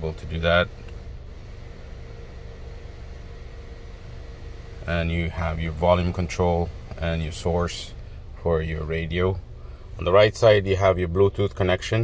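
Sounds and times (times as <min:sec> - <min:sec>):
low car cabin hum: 0:00.0 - 0:12.0.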